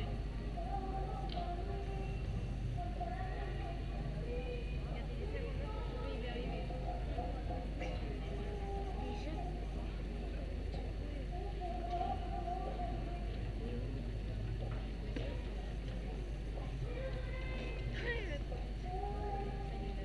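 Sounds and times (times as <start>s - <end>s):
people chattering: 0.0s - 20.0s
steady low hum: 0.0s - 20.0s.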